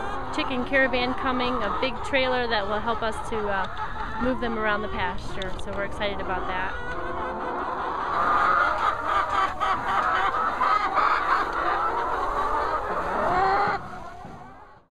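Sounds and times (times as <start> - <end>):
hens clucking: 0.0 - 14.8.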